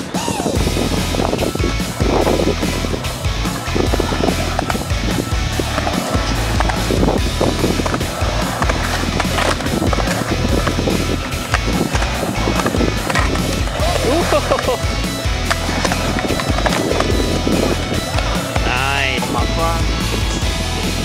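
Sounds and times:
skateboard clacks: 0:00.0 - 0:21.0
skateboard wheels rumbling: 0:00.0 - 0:21.0.

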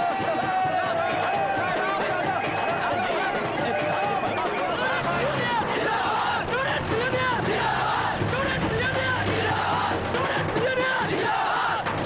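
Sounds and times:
crowd of men shouting and cheering: 0:00.0 - 0:12.0.

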